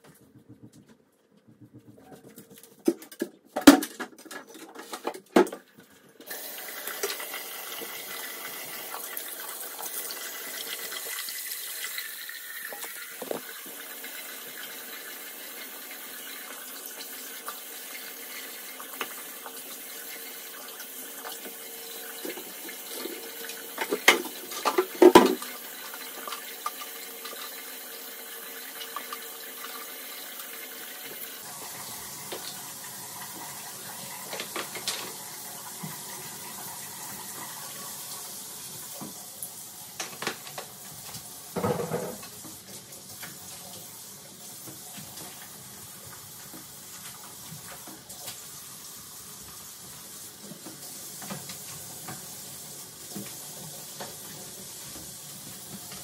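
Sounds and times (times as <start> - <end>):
faucet running into sink: 6.2 - 56.0.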